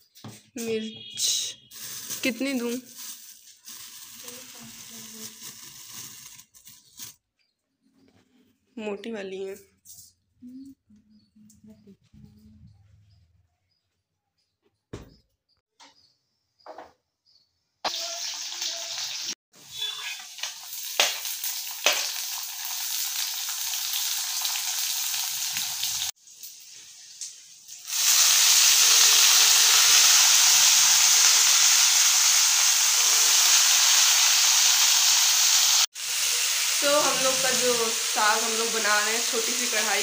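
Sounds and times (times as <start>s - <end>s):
oil sizzling in a pan: 1.7s - 7.1s, 17.8s - 40.0s.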